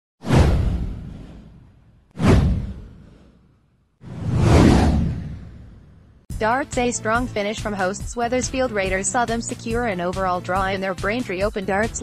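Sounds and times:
deep low boom: 0.3s - 3.2s, 4.1s - 6.2s.

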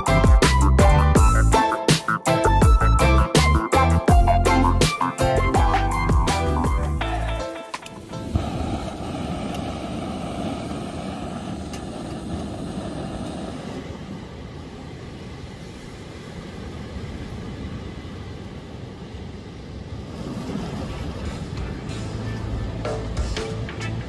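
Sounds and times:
wind: 0.0s - 24.0s
ocean surf: 4.6s - 24.0s
camp stove hissing: 7.0s - 17.4s, 19.3s - 24.0s.

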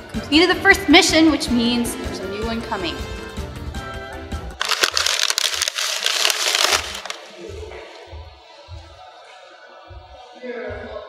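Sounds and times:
background music: 0.0s - 11.0s
foil and paper bag crinkling: 4.6s - 7.3s.

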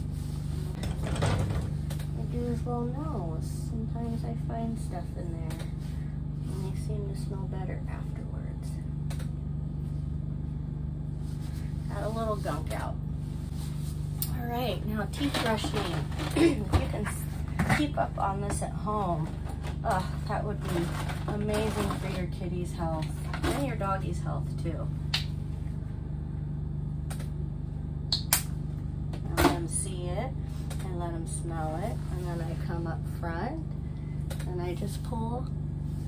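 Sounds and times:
low mechanical hum: 0.0s - 36.0s.

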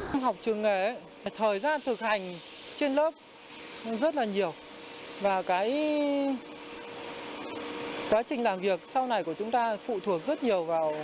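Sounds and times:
factory machinery hum: 0.0s - 11.0s.

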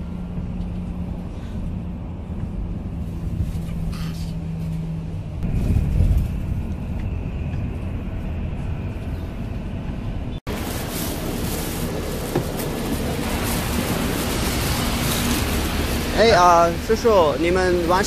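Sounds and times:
bus engine and road noise: 0.0s - 18.0s
rain hiss on wet road: 10.5s - 17.2s.

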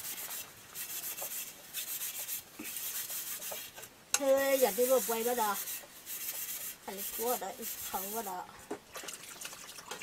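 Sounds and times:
hand scrubbing metal plate: 0.0s - 8.5s.

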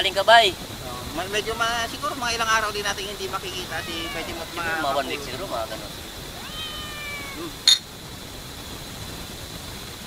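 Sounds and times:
cat meowing: 3.3s - 7.7s.

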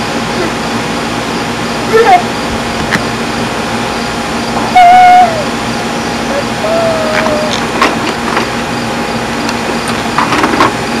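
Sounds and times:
baby squealing: 4.8s - 5.5s, 6.3s - 7.7s.

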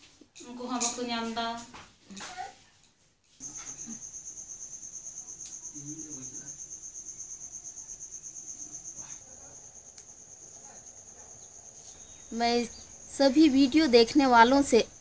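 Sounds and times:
cricket trilling: 3.4s - 15.0s.

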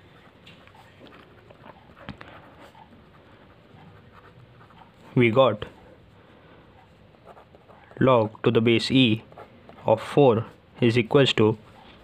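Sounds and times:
pen scratching on paper: 0.0s - 5.9s, 6.7s - 10.6s.

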